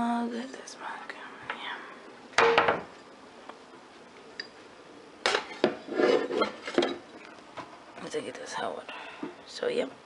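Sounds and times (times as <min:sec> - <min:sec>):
mug and coffee maker knocking: 0:02.4 - 0:02.9.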